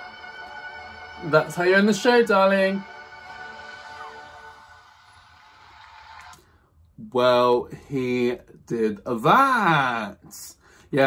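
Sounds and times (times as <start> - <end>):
concert recording playing back: 0.0 - 7.8.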